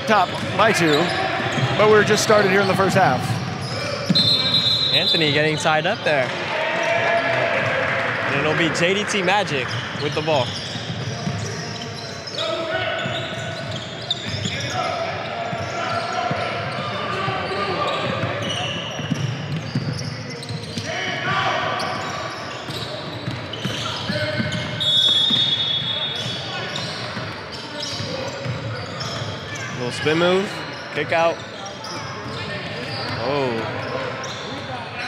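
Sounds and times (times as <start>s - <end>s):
people talking and calling out: 0.0s - 35.0s.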